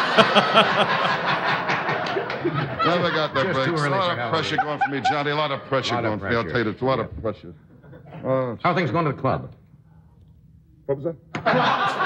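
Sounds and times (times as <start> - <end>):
man laughing in bursts: 0.0 - 1.7
studio audience laughing: 0.0 - 6.0, 11.4 - 12.0.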